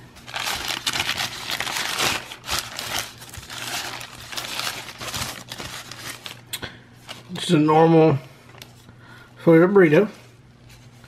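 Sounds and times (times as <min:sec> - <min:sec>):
paper wrapper crinkling: 0:00.1 - 0:06.5.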